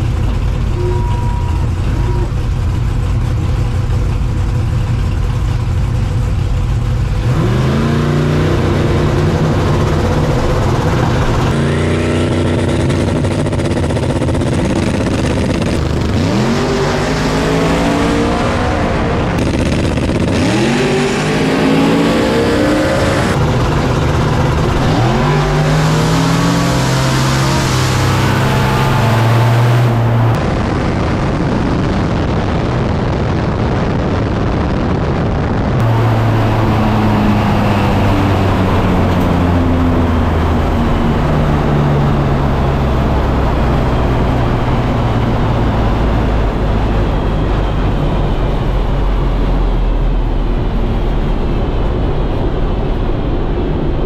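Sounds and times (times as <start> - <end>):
drag car engine revving: 0.0 - 54.0.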